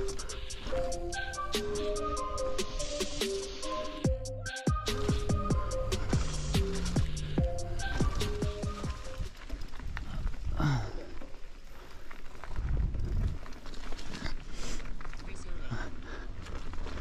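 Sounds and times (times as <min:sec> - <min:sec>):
electronic music with beat: 0:00.0 - 0:09.3
bike tyres on dirt: 0:00.0 - 0:17.0.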